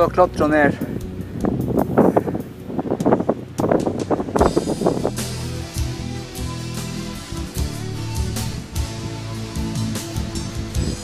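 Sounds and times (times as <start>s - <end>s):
wind buffeting microphone: 0.0s - 6.6s, 10.4s - 11.0s.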